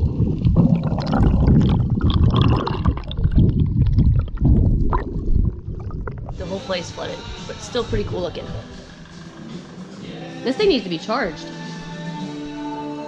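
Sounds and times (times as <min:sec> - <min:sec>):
underwater bubbling: 0:00.0 - 0:10.0
underwater rumble of moving water: 0:00.0 - 0:10.0.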